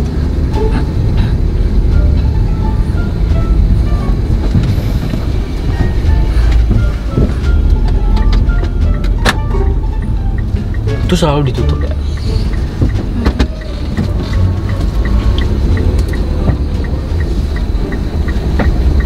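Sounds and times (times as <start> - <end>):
car cabin rumble: 0.0 - 19.0
light background music: 0.1 - 19.0.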